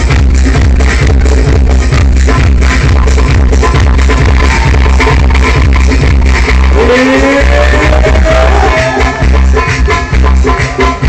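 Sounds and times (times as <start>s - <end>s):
heavy bass beat: 0.0s - 11.0s
live electronic dance music: 0.0s - 11.0s
sliding lead note: 3.6s - 9.6s.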